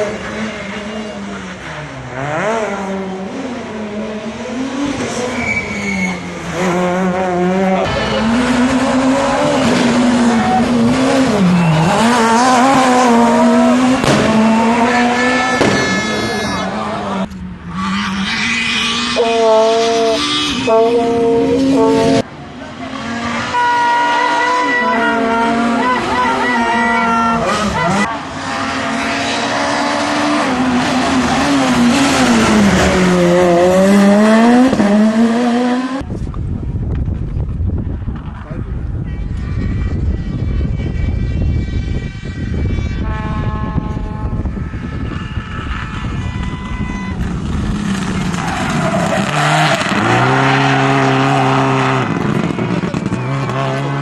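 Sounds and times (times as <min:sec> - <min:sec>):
rally car engine at high revs: 0:00.0 - 0:36.1, 0:45.6 - 0:54.0
rally car approaching: 0:00.0 - 0:39.0, 0:45.4 - 0:54.0.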